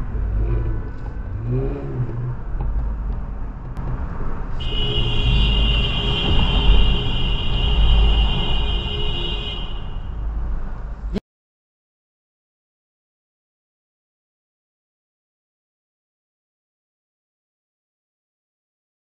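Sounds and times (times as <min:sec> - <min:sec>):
car engine and road rumble: 0:00.0 - 0:11.2.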